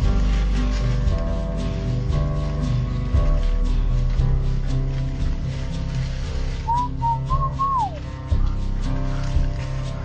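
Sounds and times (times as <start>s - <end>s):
background music: 0.0s - 10.0s
whistled phrase: 6.6s - 8.1s.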